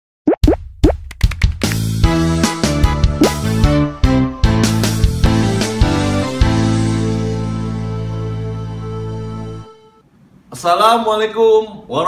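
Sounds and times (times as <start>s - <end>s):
cartoon plop sound effects: 0.3s - 0.6s, 3.2s - 3.4s.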